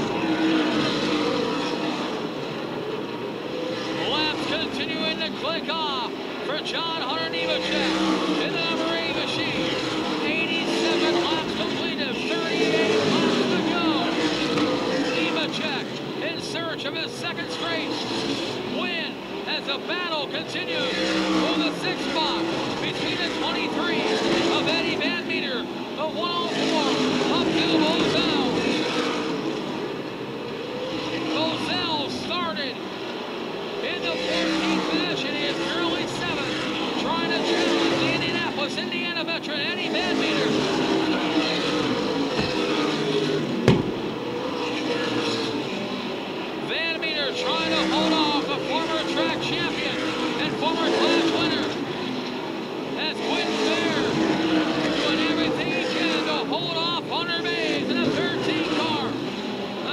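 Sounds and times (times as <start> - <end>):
race car engines passing: 0.0 - 59.9.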